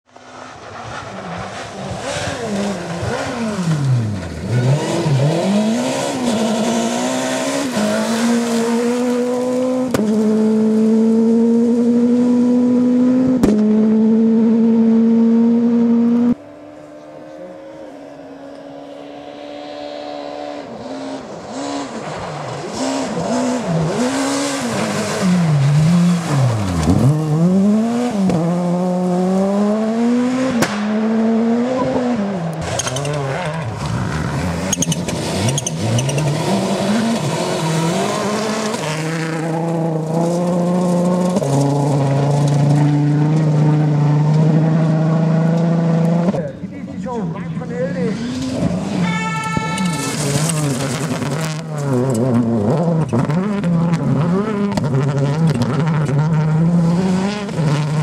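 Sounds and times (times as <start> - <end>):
car approaching: 0.0 - 58.0
rally car engines revving: 0.0 - 58.0.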